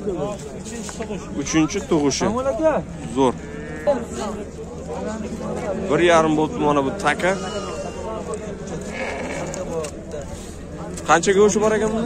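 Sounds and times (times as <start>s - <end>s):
faint background voices: 0.0s - 12.0s
sheep bleating: 3.3s - 4.2s, 7.1s - 8.2s, 8.8s - 9.7s.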